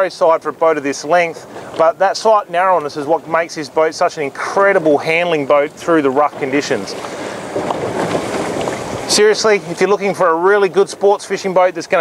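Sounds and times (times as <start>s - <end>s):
water rushing around boat: 0.0s - 12.0s
wind: 0.0s - 12.0s.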